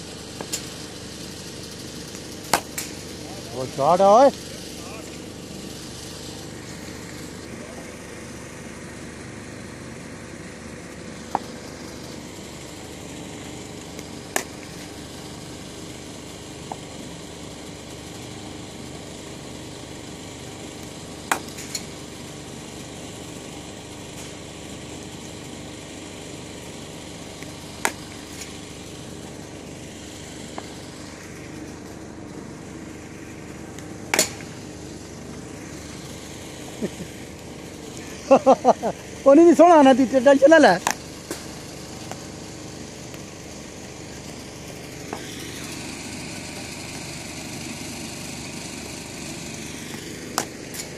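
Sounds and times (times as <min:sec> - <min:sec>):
steady low hum: 0:00.0 - 0:50.9
cricket bat striking ball: 0:02.4 - 0:02.9, 0:33.8 - 0:34.6.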